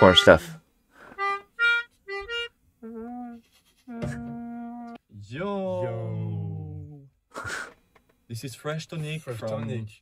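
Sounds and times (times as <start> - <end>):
melodica notes: 0.0 - 5.0.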